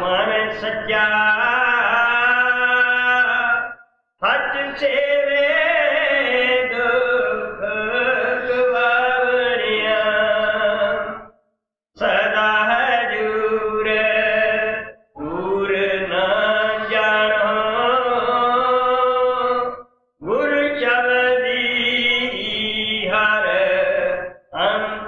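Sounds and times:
person chanting: 0:00.0 - 0:11.3, 0:12.0 - 0:25.0.

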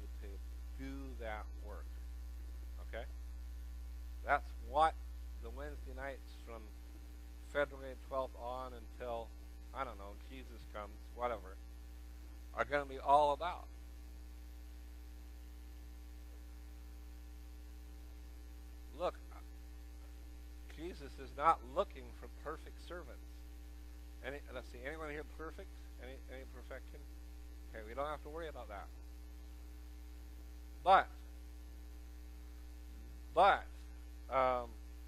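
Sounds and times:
man speaking: 0:00.0 - 0:01.9, 0:02.8 - 0:03.1, 0:04.3 - 0:06.7, 0:07.5 - 0:11.6, 0:12.6 - 0:13.7, 0:19.0 - 0:19.4, 0:20.7 - 0:23.4, 0:24.2 - 0:27.0, 0:27.7 - 0:28.9, 0:30.9 - 0:31.2, 0:33.3 - 0:34.8
steady low hum: 0:00.0 - 0:35.0.

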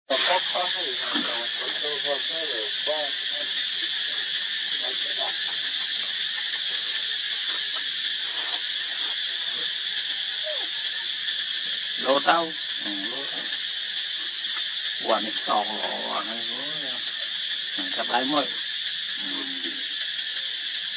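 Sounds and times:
high-pitched insect chorus: 0:00.1 - 0:20.9
short pitched vocal calls: 0:19.2 - 0:19.9.

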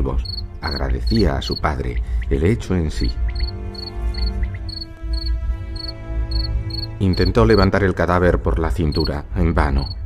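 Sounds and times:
background music drone: 0:00.0 - 0:10.0
crickets chirping: 0:00.2 - 0:01.6, 0:03.2 - 0:07.7.

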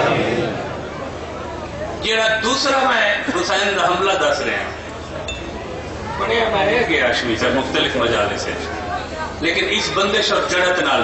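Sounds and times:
light clink with high ring: 0:05.2 - 0:05.6.

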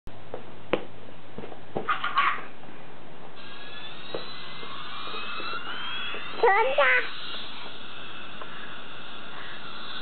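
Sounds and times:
toy jet engine whine: 0:03.4 - 0:10.0.

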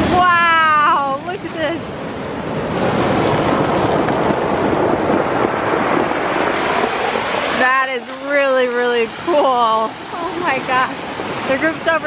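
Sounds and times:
surf rushing over pebbles: 0:00.0 - 0:12.0.

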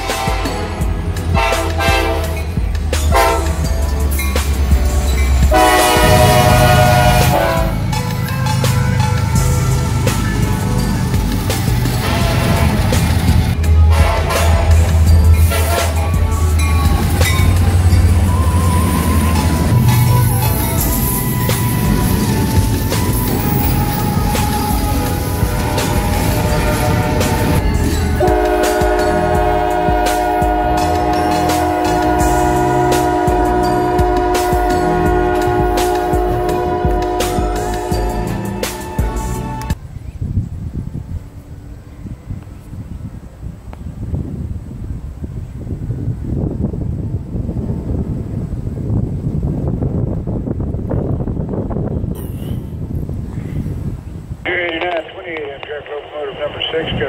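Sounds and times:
locomotive horn: 0:00.0 - 0:03.9, 0:04.9 - 0:08.1, 0:11.9 - 0:39.8
freight train rumbling past: 0:00.0 - 0:57.0
wind buffeting microphone: 0:04.7 - 0:30.8, 0:39.8 - 0:54.5.

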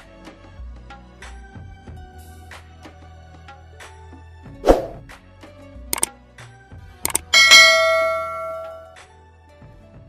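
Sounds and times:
mouse clicks: 0:07.1 - 0:07.3
loud bell ding: 0:07.1 - 0:09.0.

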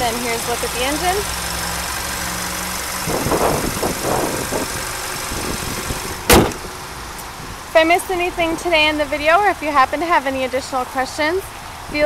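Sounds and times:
car engine idling: 0:00.0 - 0:10.5
car hood slamming shut: 0:06.2 - 0:06.8.

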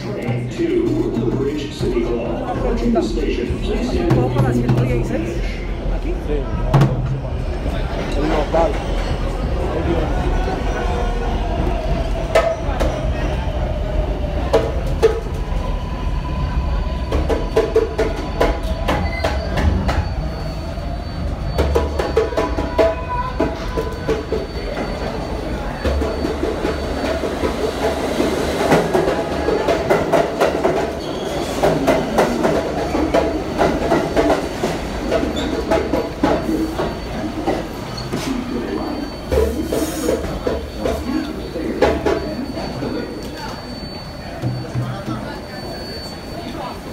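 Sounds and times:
subway train passing: 0:00.0 - 0:46.9
subway train pulling in: 0:00.0 - 0:46.9
wheels squealing: 0:15.5 - 0:46.9.

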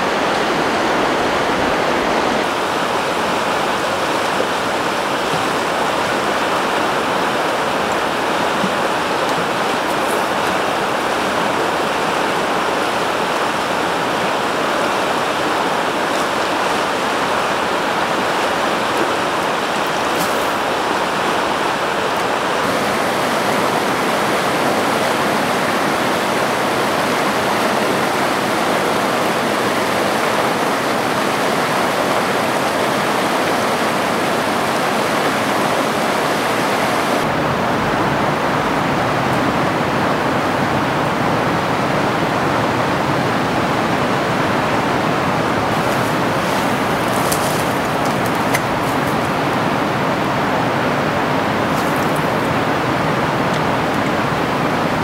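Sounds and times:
river water rushing over rapids: 0:00.0 - 0:55.0.

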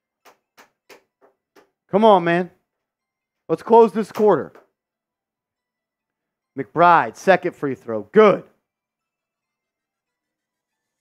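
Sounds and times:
man speaking: 0:01.9 - 0:02.6, 0:03.5 - 0:04.6, 0:06.6 - 0:08.6.

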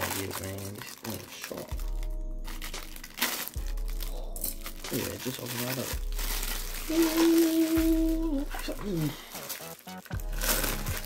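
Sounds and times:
knife cutting plastic sleeve: 0:00.0 - 0:11.0
low musical notes: 0:00.0 - 0:11.0.

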